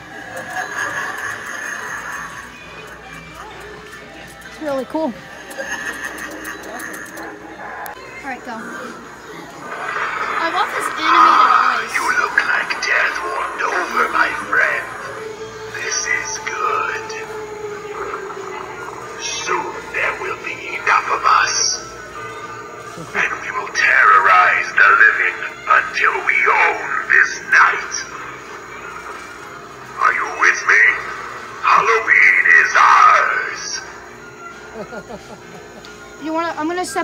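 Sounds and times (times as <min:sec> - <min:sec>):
music: 0:00.0 - 0:37.0
spooky recorded voice: 0:07.3 - 0:21.9, 0:23.0 - 0:28.2, 0:29.9 - 0:34.0.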